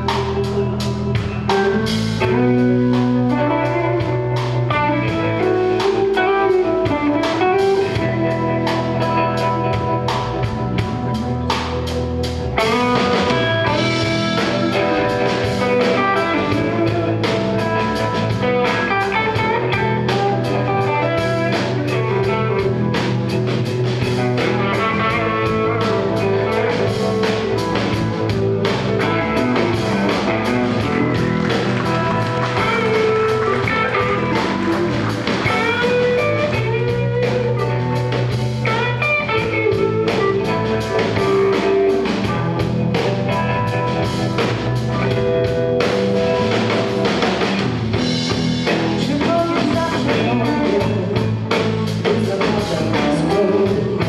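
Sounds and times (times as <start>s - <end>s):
drum kit: 0.0s - 54.0s
electric bass: 0.0s - 54.0s
electric guitars: 0.0s - 54.0s.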